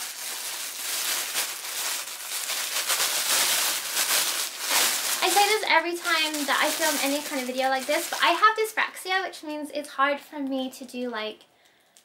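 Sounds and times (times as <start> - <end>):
plastic bag crinkling: 0.0 - 8.9.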